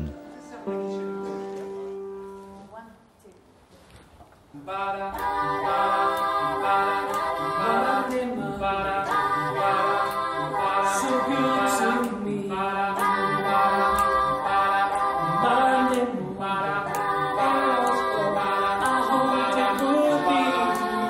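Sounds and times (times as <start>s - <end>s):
mixed group singing a cappella: 4.5s - 21.0s.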